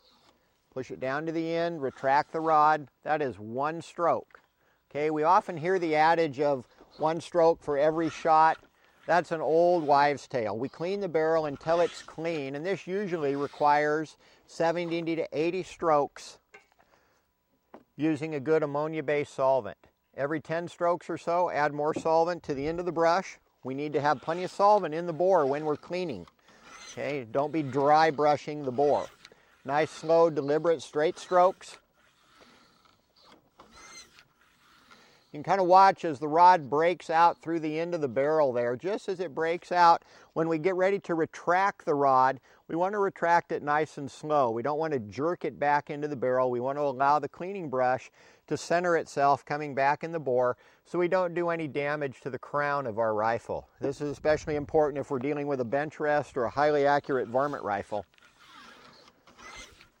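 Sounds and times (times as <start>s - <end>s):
bore brush scraping in barrel: 5.3s - 15.3s, 21.3s - 37.4s.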